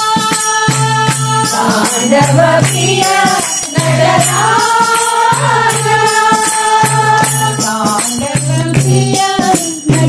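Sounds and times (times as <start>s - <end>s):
light percussion strokes: 0.0s - 10.0s.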